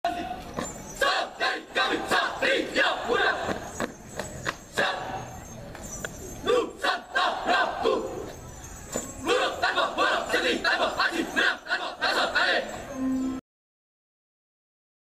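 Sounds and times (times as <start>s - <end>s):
drill team shouting in unison: 1.0s - 3.6s, 4.7s - 5.3s, 6.4s - 8.2s, 9.2s - 12.8s.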